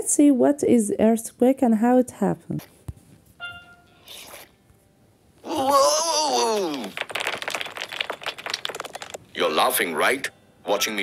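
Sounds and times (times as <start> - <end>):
cartoon character wailing: 5.4 - 6.9
objects rattling and tumbling: 6.4 - 9.4.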